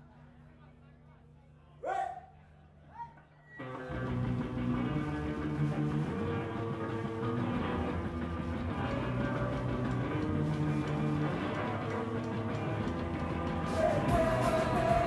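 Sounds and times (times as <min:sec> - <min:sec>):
live rock band playing: 0:03.8 - 0:15.0.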